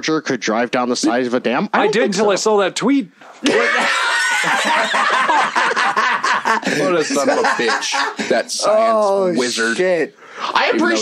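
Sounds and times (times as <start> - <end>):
man speaking: 0.0 - 3.9, 6.6 - 11.0
men laughing: 3.4 - 9.0.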